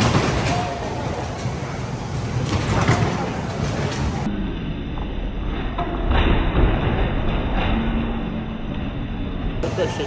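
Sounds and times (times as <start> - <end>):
bumper cars thudding: 0.0 - 4.3
bumper cars rumbling: 0.0 - 10.0.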